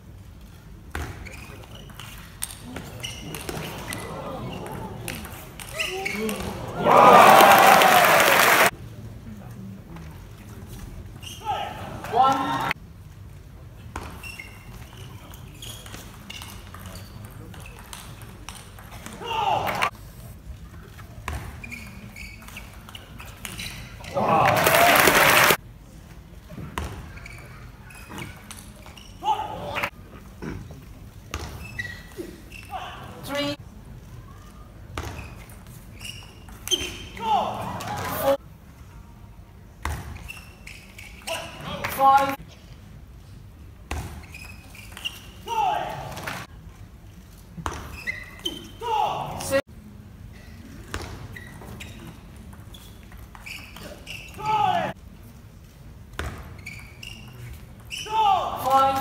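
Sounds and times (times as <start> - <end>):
shoes squeaking on floor: 1.0 - 6.7, 11.2 - 11.8, 13.9 - 19.0, 20.2 - 24.4, 26.8 - 29.9, 30.7 - 33.6, 34.4 - 38.4, 39.9 - 42.4, 43.9 - 46.5, 47.2 - 49.6, 50.3 - 55.0, 55.6 - 59.0
crowd cheering and applause: 6.7 - 8.7, 24.2 - 25.6.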